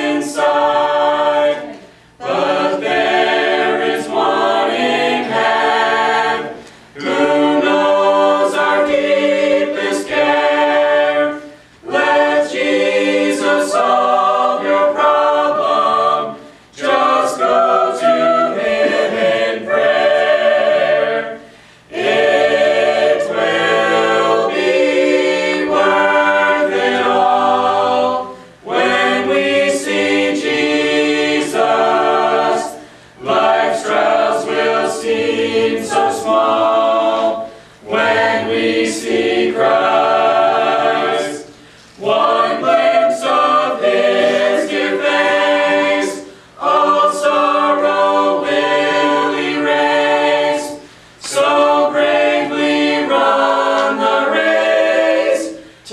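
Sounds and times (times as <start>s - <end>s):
choir singing a hymn in harmony: 0.0s - 55.9s.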